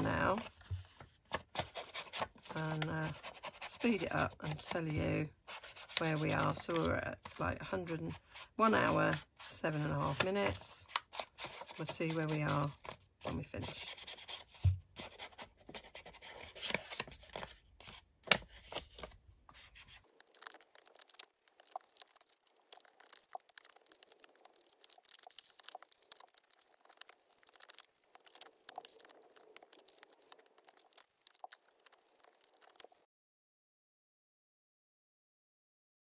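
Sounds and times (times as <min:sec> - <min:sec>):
brush dabbing and rubbing on paper: 0:00.0 - 0:33.0
paper being handled: 0:00.0 - 0:33.0.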